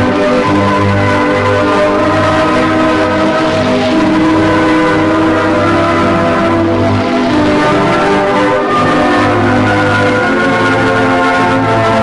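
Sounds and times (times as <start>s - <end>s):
sustained organ chords: 0.0s - 12.0s.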